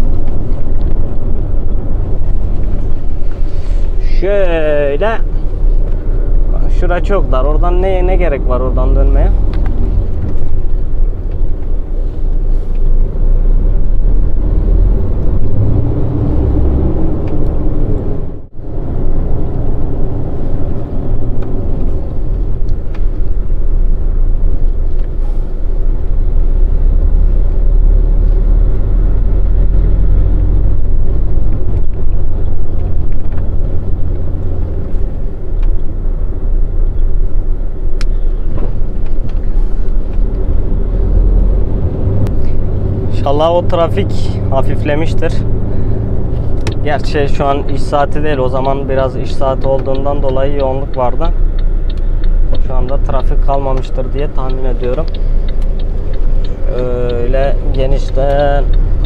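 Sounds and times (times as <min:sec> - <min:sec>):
diesel truck engine rumble: 0:00.0 - 0:59.0.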